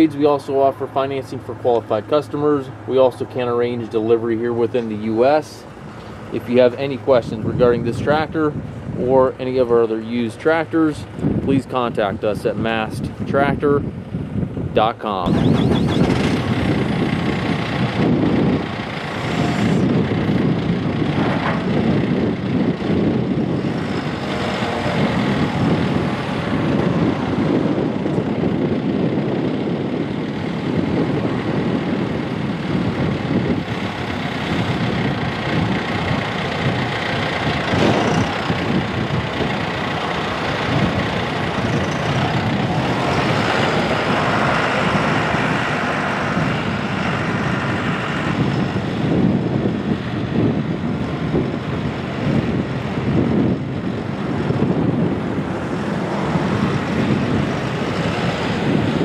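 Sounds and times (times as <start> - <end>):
tractor diesel engine running: 0.0 - 12.1, 13.9 - 59.0.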